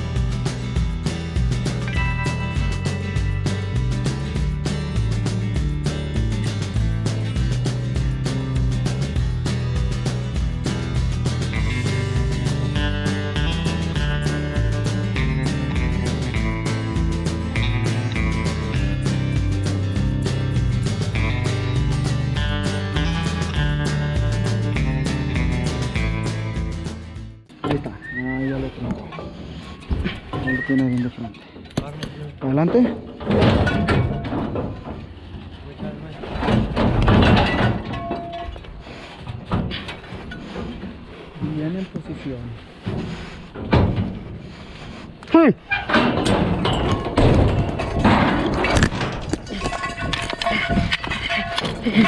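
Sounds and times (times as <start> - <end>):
country guitar music: 0.0 - 27.6
thuds and knocks in chute: 32.7 - 35.2, 36.2 - 38.4, 42.9 - 44.4, 45.8 - 52.0.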